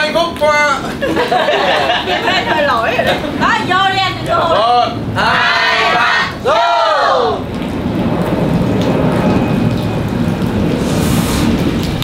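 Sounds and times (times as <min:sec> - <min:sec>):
low rumble: 0:07.4 - 0:12.0.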